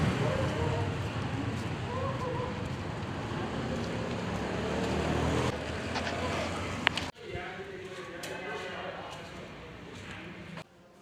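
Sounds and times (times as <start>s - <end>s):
street traffic rumble: 0.0s - 10.7s.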